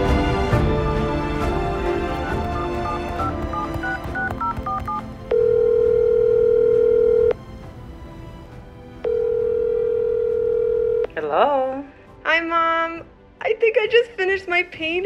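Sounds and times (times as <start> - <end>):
background music: 0.0 - 15.0
phone ringback tone: 2.1 - 7.4, 9.0 - 11.1.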